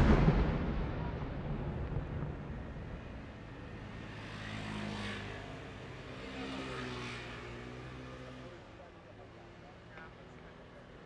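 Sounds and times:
fireworks bursts rumbling: 0.0 - 3.6
vehicle engines passing: 2.5 - 11.0.

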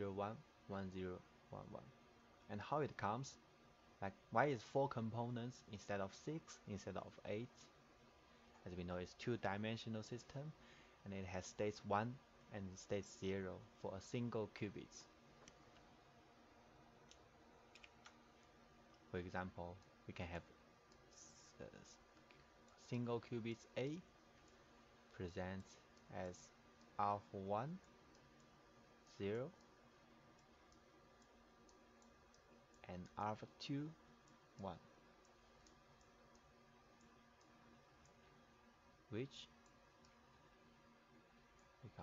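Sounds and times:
room hiss: 0.0 - 42.0.

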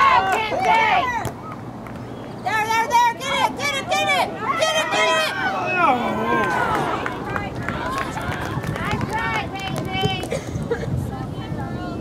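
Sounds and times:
players and spectators shouting: 0.0 - 1.3, 2.4 - 10.2
outdoor background noise: 0.0 - 12.0.

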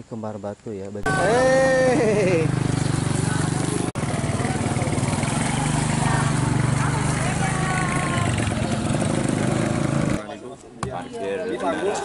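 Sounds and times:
motorcycle engine running: 1.1 - 10.2.

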